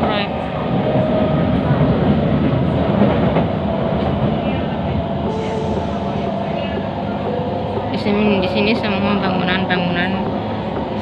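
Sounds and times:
train wheels running on track: 0:00.0 - 0:11.0.

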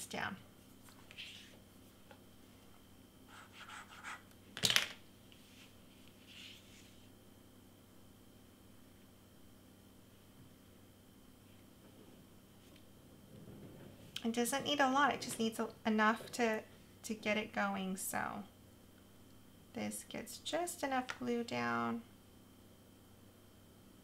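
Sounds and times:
faint room hum: 0:00.0 - 0:24.0.

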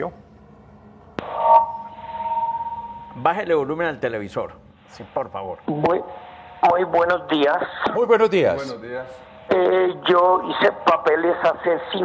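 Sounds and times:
high ringing tone: 0:00.0 - 0:04.0.

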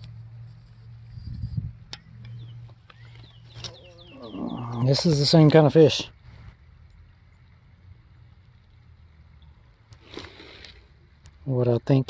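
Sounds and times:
low steady hum: 0:00.0 - 0:12.0
high falling chirps: 0:02.3 - 0:05.3
man talking: 0:04.5 - 0:06.1, 0:11.4 - 0:12.0.

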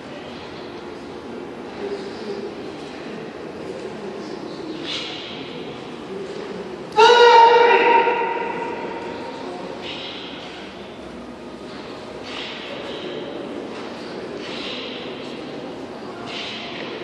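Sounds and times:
loud karate shout: 0:06.9 - 0:09.8.

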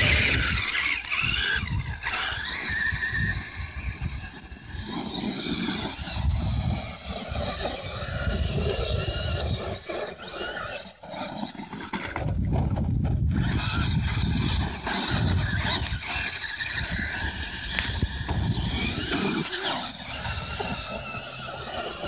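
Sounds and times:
rc truck electric motors whining: 0:00.0 - 0:22.0.

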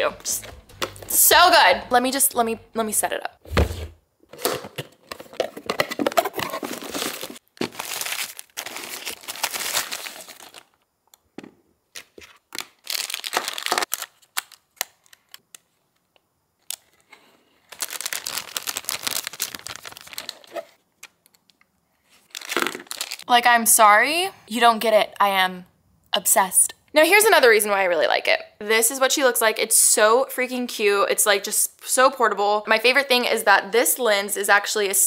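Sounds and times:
plastic packaging crinkling: 0:05.9 - 0:10.8, 0:12.0 - 0:15.6, 0:17.6 - 0:21.6, 0:22.2 - 0:23.3.

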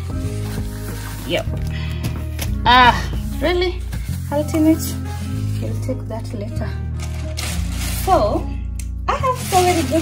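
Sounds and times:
background music sustained notes: 0:00.0 - 0:10.0.

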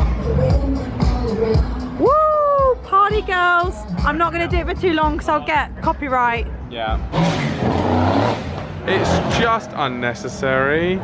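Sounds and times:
loud car exhaust accelerating past: 0:07.0 - 0:10.3.

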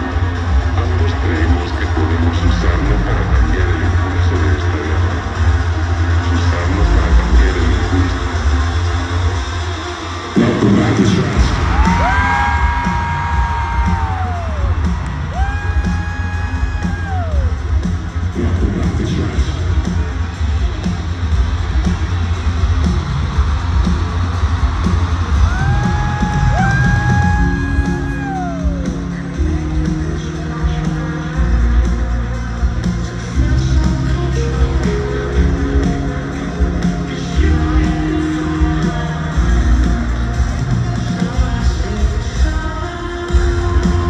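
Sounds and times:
loud live rock music: 0:00.0 - 0:44.0
crowd cheering: 0:08.4 - 0:33.1
long held yells: 0:11.7 - 0:17.5, 0:25.5 - 0:28.9.

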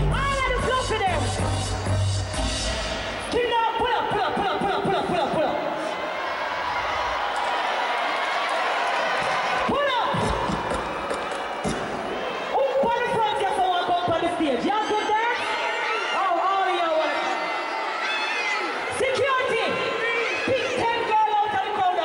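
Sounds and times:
concert crowd noise: 0:00.0 - 0:22.0.

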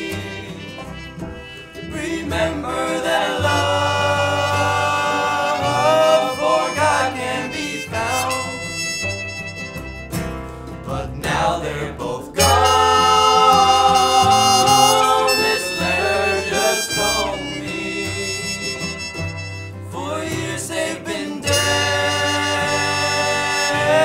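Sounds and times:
trumpet melody: 0:00.0 - 0:10.6, 0:12.4 - 0:20.1, 0:21.4 - 0:24.0
acoustic guitar: 0:00.0 - 0:24.0
banjo: 0:00.0 - 0:24.0
cello: 0:00.0 - 0:24.0.

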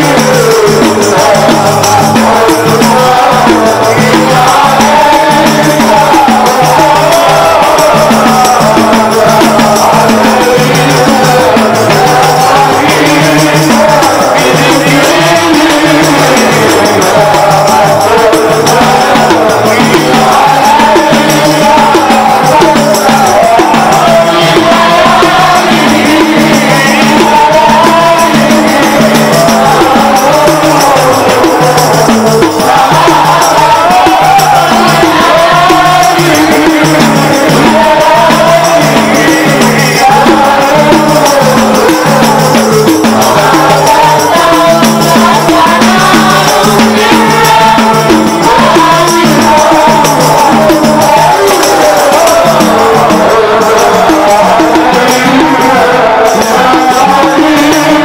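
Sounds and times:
men singing into microphones: 0:00.0 - 0:58.0
rattling percussion rhythm: 0:00.0 - 0:58.0.

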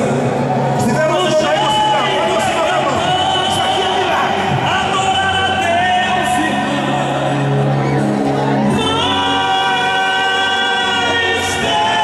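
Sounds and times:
worship music: 0:00.0 - 0:12.0
congregation singing along: 0:01.0 - 0:12.0
woman singing into a microphone: 0:08.7 - 0:12.0.

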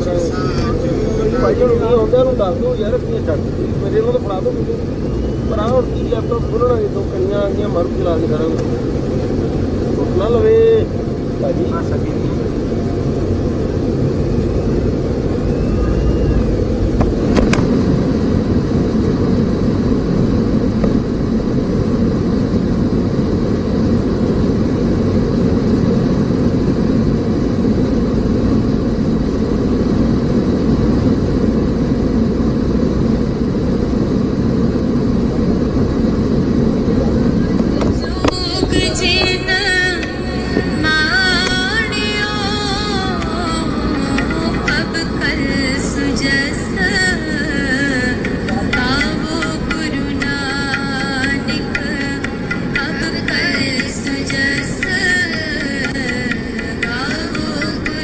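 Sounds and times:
voices: 0:00.0 - 0:17.8, 0:36.2 - 0:58.0
road vehicle rumble: 0:00.0 - 0:58.0.

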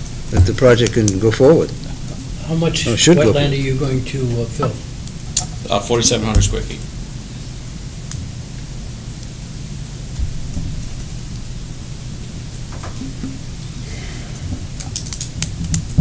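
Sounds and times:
microphone system hiss and hum: 0:00.0 - 0:16.0
faint clicks and rustles: 0:14.4 - 0:16.0.

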